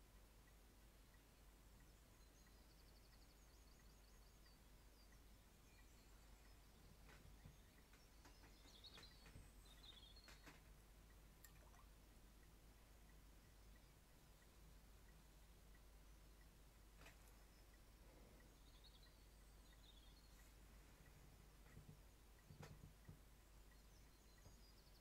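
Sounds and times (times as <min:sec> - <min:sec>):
light clicks: 0:16.4 - 0:25.0.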